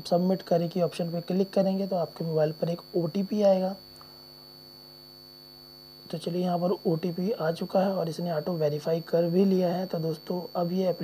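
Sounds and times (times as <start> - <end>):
faint high-pitched whine: 0.0 - 11.0
low electrical hum: 0.0 - 11.0.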